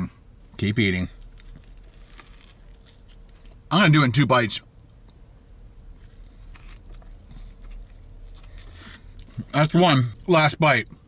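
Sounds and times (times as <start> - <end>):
biting crispy sandwich: 1.1 - 3.6, 5.7 - 10.2
chewing mouth sounds: 1.2 - 3.6, 5.8 - 10.2.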